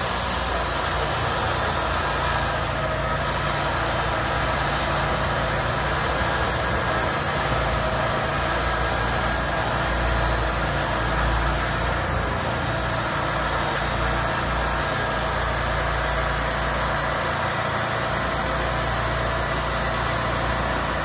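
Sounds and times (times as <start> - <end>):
sawmill engine running: 0.0 - 21.0.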